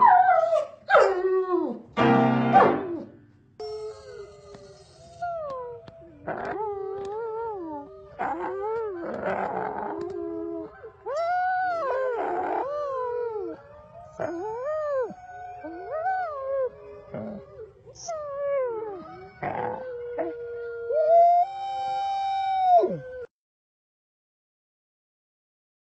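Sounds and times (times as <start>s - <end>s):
dog howling: 3.0s - 23.3s.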